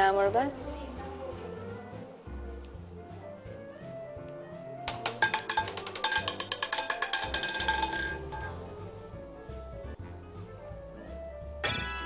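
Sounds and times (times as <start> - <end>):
background music: 0.0 - 12.0
roulette ball rattling: 4.9 - 8.9.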